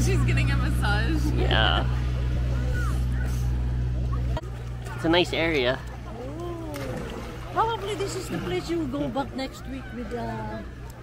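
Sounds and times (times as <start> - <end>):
water-jet pump humming: 0.0 - 11.0.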